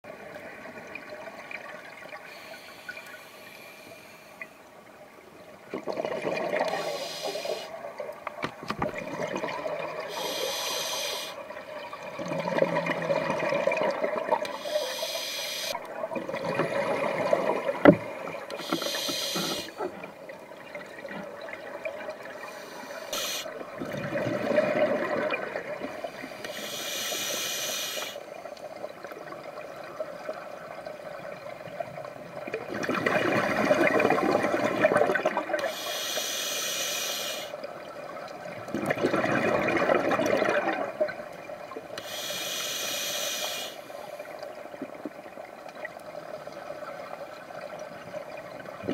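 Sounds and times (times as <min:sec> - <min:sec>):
regulator hissing inhalations: 0:02.3 - 0:04.4, 0:06.7 - 0:07.7, 0:10.1 - 0:11.4, 0:14.5 - 0:15.8, 0:18.5 - 0:19.8, 0:22.4 - 0:23.6, 0:26.2 - 0:28.3, 0:35.6 - 0:37.6, 0:42.0 - 0:44.3.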